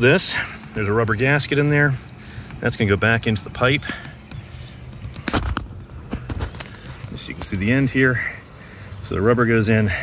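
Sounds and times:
plastic rub or knock: 3.6s - 7.5s.

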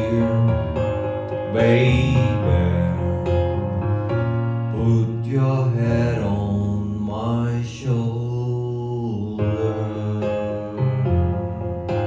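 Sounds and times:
slow electric piano backing: 0.0s - 12.0s
man singing long note: 4.7s - 11.4s.

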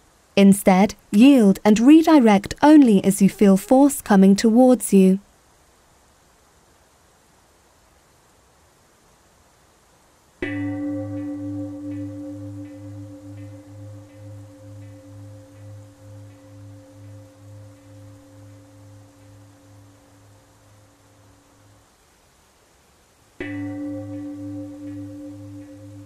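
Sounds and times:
bell ringing with pulsing waver: 10.4s - 21.7s, 23.4s - 26.0s.

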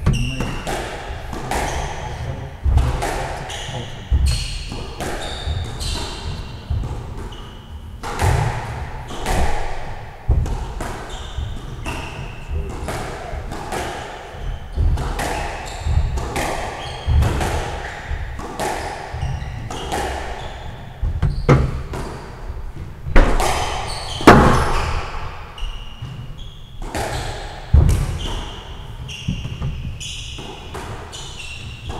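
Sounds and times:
shoes squeaking on wooden floor: 0.0s - 8.4s, 10.4s - 13.5s, 14.3s - 31.9s
squash ball hits: 0.0s - 31.9s.

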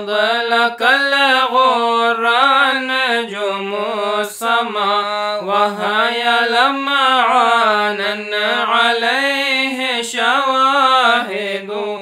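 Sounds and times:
person chanting unaccompanied: 0.0s - 12.0s.

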